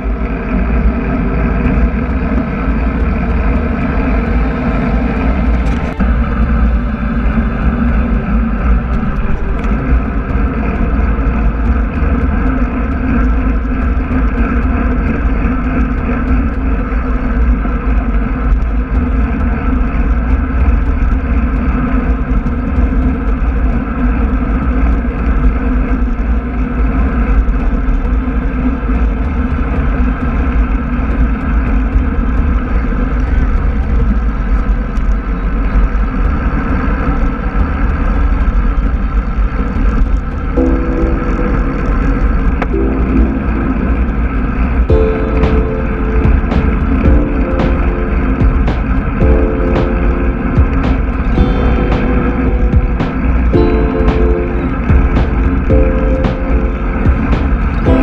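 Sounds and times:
bike tyres rolling on asphalt: 0.0s - 42.8s
wind noise on microphone: 0.0s - 58.0s.

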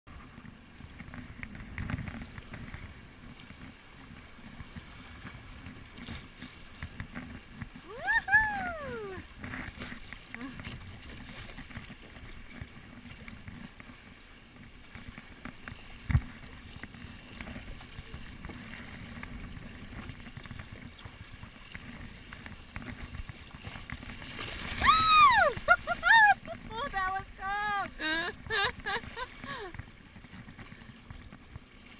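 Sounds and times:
high voice whooping: 7.9s - 9.2s, 24.8s - 29.8s
river rapids rushing: 24.8s - 28.2s.

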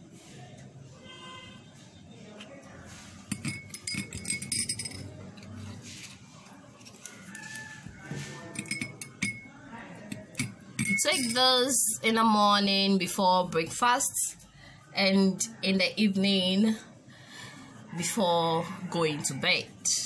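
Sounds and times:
metal spoon clinking glass: 3.2s - 5.5s, 8.4s - 11.7s.

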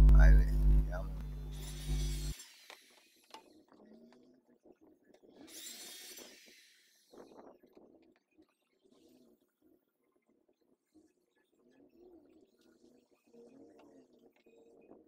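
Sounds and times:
background music with bass hum: 0.0s - 2.4s
circular saw whining: 0.0s - 3.3s.

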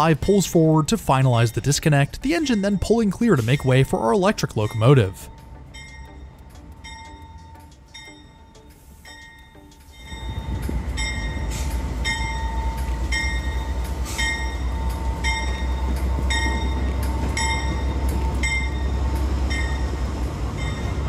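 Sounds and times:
diesel locomotive engine rumble: 0.0s - 21.0s
locomotive bell ringing: 0.0s - 21.0s.

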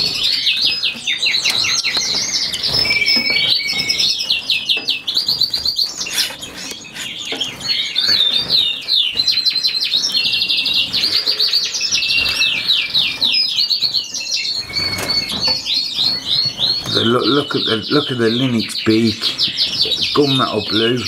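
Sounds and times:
finches chirping and twittering: 0.0s - 21.0s.

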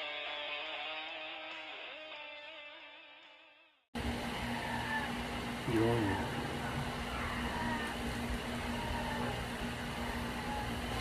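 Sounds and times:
background hum and hiss: 4.0s - 11.0s.

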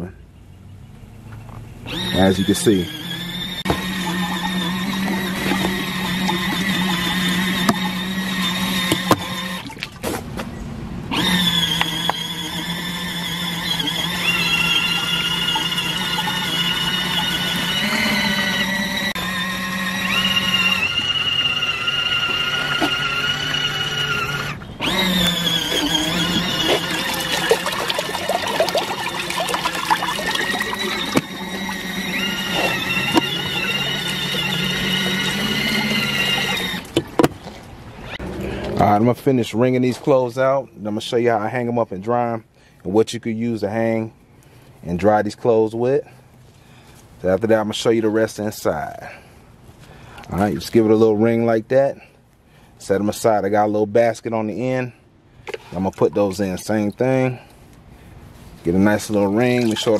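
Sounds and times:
washing machine motors whining: 1.8s - 10.0s, 11.1s - 38.2s, 58.4s - 59.9s.

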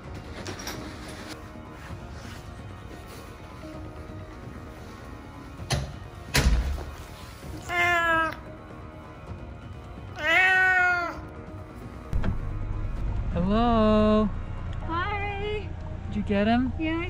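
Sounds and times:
cat meowing: 7.6s - 8.5s, 10.1s - 11.3s.

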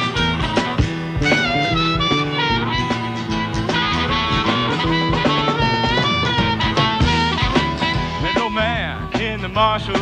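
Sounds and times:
country-rock band instrumental: 0.0s - 10.0s.

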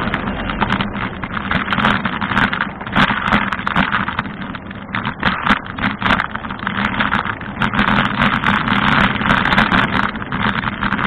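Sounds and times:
bicycle rolling road noise: 0.0s - 11.0s
wind: 0.0s - 11.0s.

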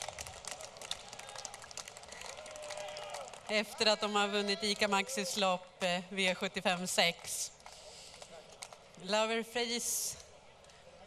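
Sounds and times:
small crowd clapping: 0.0s - 5.0s, 7.6s - 9.0s.

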